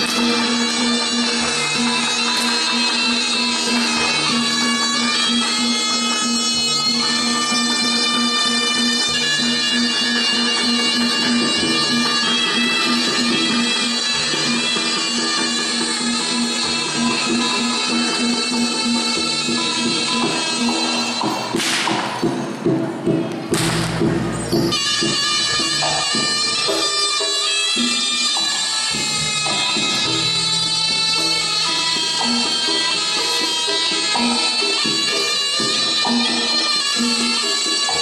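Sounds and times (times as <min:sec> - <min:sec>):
buzzy double-reed shawm melody: 0:00.0 - 0:38.0
struck gamelan instruments: 0:00.0 - 0:38.0
whip crack: 0:21.3 - 0:22.2, 0:23.5 - 0:24.0.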